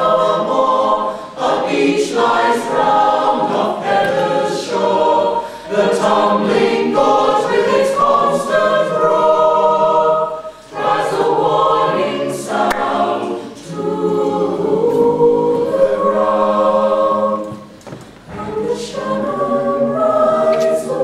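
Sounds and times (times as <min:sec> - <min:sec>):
a cappella choir singing in harmony: 0:00.0 - 0:21.0.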